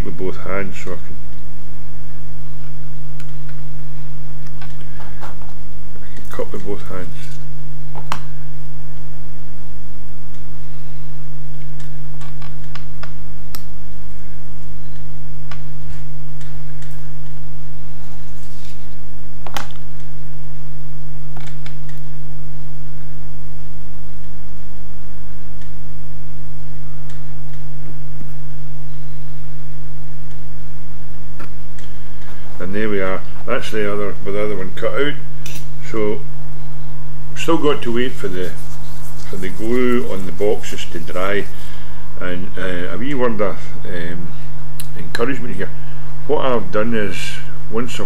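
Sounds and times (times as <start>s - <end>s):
low hum: 0.0s - 48.0s.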